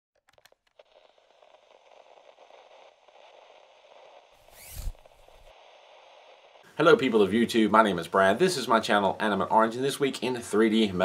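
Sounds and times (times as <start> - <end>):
faint crackling scrape: 0.4 - 8.7
rising whoosh: 4.4 - 6.6.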